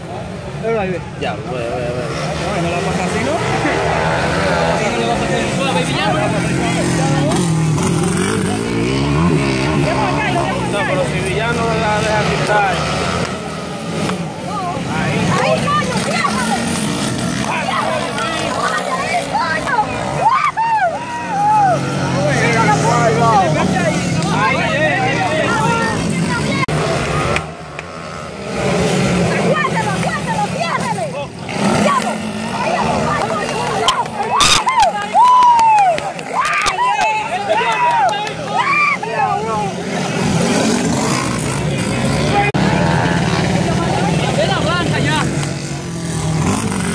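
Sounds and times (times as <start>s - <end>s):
dirt bike engines revving: 0.0s - 46.9s.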